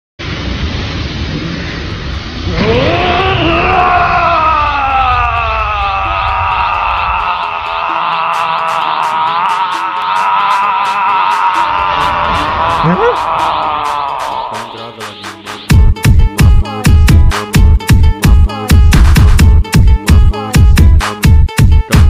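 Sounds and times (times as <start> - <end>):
long held scream: 2.4 - 14.9
steady ticking beat: 8.3 - 22.0
low rumble: 11.6 - 14.5.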